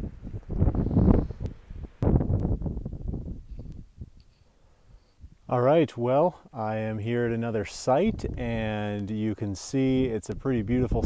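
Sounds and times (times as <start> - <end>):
wind buffeting microphone: 0.0 - 4.2, 7.9 - 9.1, 9.8 - 11.0.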